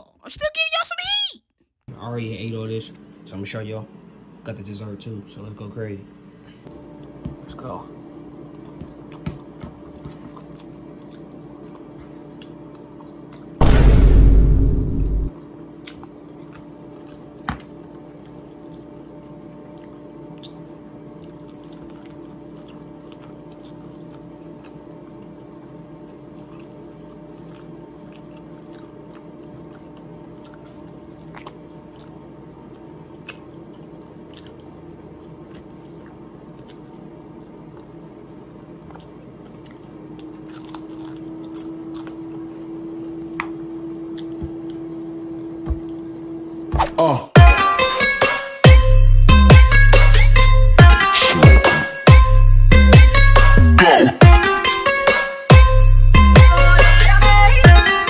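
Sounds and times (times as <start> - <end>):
person chewing food: 6.6 - 13.6, 15.4 - 46.7
low hum: 13.5 - 15.4.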